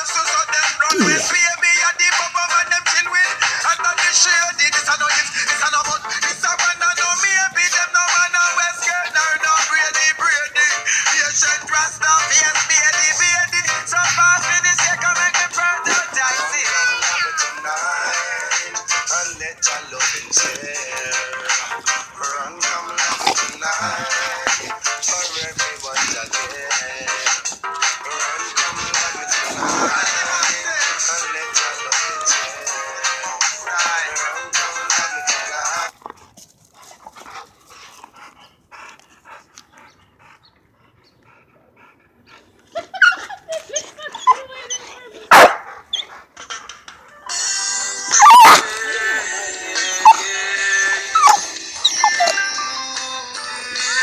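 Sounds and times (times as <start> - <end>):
background music with steady beat: 0.0 - 35.9
dogs growling: 0.6 - 1.8, 3.2 - 47.2, 47.9 - 54.0.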